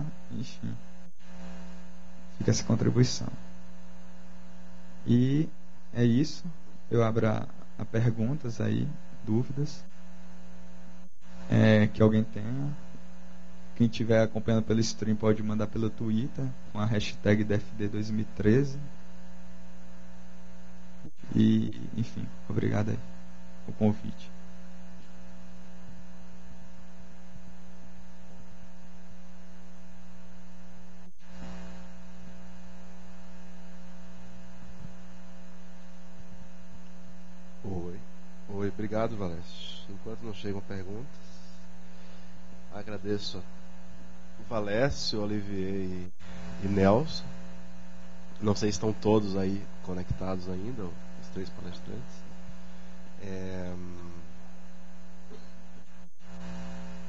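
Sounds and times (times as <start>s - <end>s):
electrical mains hum: 0.0s - 57.0s.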